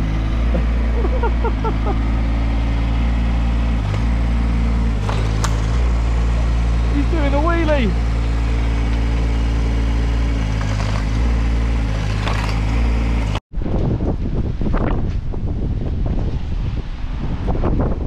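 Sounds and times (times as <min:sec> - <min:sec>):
excavator engine running: 0:00.0 - 0:13.4
wind buffeting microphone: 0:13.5 - 0:18.0.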